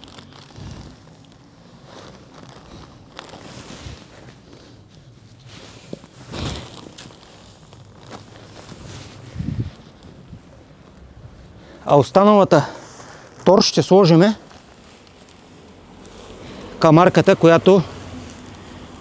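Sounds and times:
plastic bag rustling: 0:00.0 - 0:19.0.

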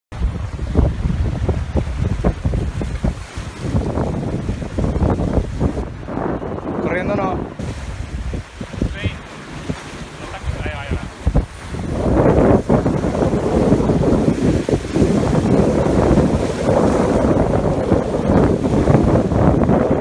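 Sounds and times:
surf washing against rocks: 0:00.1 - 0:20.0
wind buffeting microphone: 0:00.1 - 0:20.0.

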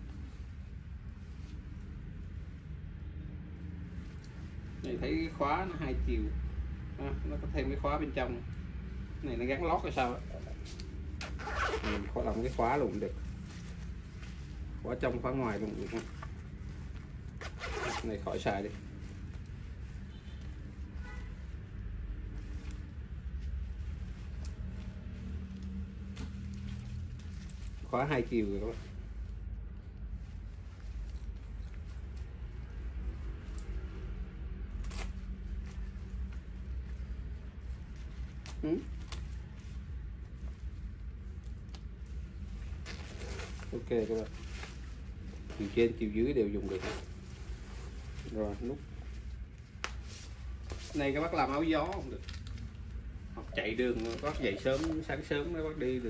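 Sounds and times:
nylon jacket rustling: 0:00.0 - 0:03.0, 0:09.0 - 0:56.0
zipper rasp: 0:11.2 - 0:12.2, 0:17.4 - 0:18.3
zipper being worked: 0:11.2 - 0:12.5, 0:16.9 - 0:18.4, 0:46.6 - 0:48.0.

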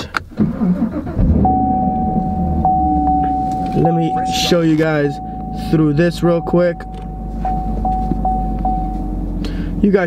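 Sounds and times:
ignition click: 0:00.0 - 0:05.6, 0:06.3 - 0:08.8
car engine idling: 0:00.0 - 0:10.0
engine cranking: 0:00.2 - 0:08.0
steady high tone: 0:01.4 - 0:09.3.

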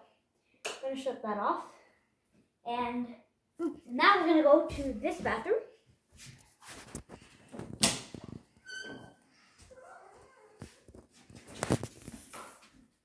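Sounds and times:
brief high squeak: 0:08.6 - 0:09.2.

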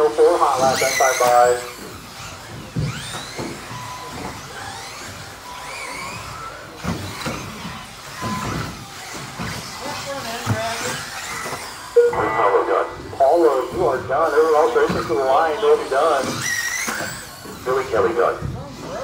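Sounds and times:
voices: 0:00.0 - 0:01.8, 0:12.0 - 0:16.6, 0:17.5 - 0:19.0
busy hall background: 0:00.0 - 0:19.0
electric toy car motors whining: 0:00.0 - 0:19.0.

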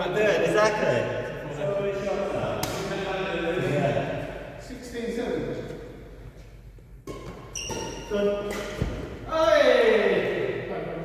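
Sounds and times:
shoes squeaking on court: 0:07.1 - 0:08.8.

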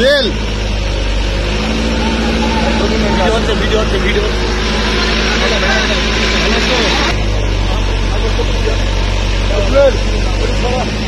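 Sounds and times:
diesel engine running: 0:00.0 - 0:11.0.

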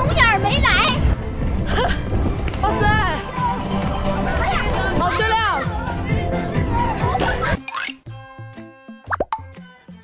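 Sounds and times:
playful plucked background music: 0:00.1 - 0:10.0
cartoon bloop sound effects: 0:07.5 - 0:08.0.

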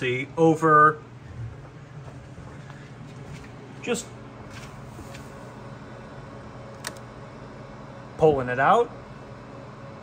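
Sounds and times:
server cooling fans droning: 0:00.0 - 0:10.0
sharp click: 0:06.7 - 0:07.1.

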